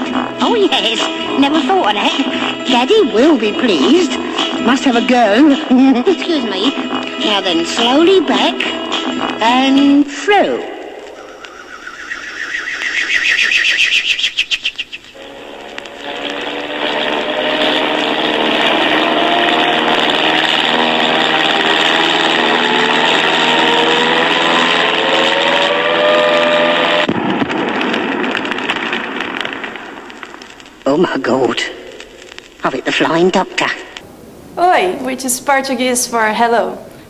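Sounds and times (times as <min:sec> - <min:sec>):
fast-pulsing whirr: 0:11.2 - 0:27.1
engine-like roar with whining tones: 0:15.2 - 0:27.2.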